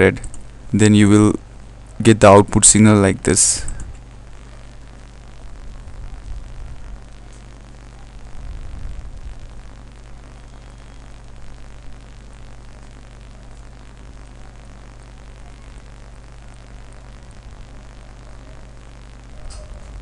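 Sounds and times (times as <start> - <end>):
low electrical hum: 0.0 - 20.0
steady hiss: 0.0 - 20.0.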